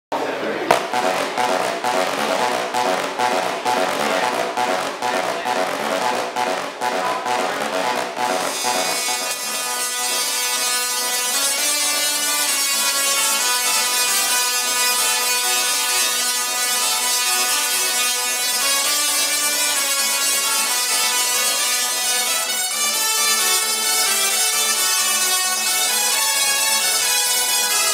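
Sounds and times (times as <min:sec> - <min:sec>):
tesla coils playing music: 0:00.7 - 0:27.9.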